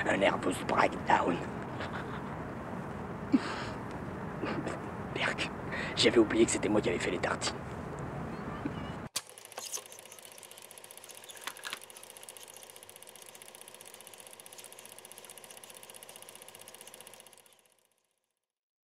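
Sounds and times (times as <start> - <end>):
old film soundtrack noise: 0.0 - 8.3, 9.2 - 17.8.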